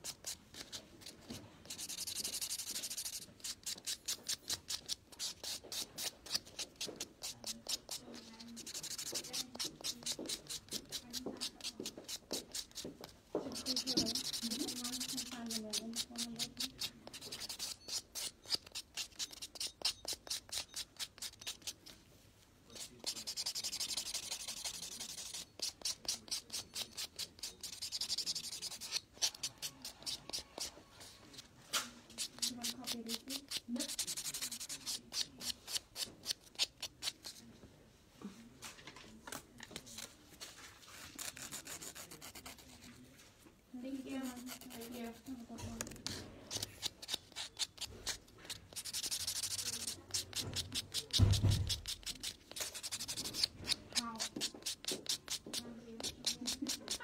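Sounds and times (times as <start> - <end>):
nail file scraping fingernail: 0.0 - 22.0, 22.7 - 30.8, 32.1 - 37.4, 41.0 - 42.9, 44.2 - 45.2, 45.8 - 57.0.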